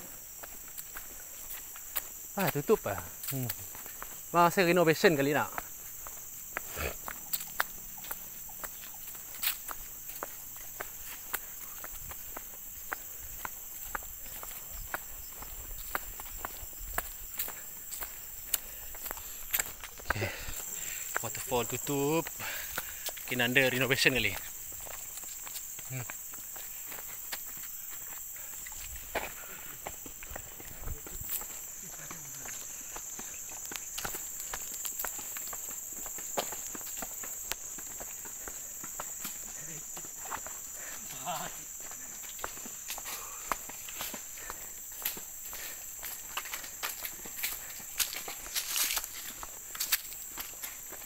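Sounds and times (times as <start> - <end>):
footsteps on concrete and dry leaves: 0.0 - 51.0
high insect drone: 0.0 - 51.0.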